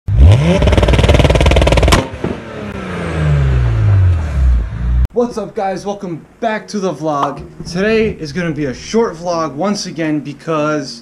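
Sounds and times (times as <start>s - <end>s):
car engine revving: 0.1s - 5.1s
sharp crack: 0.6s - 2.8s.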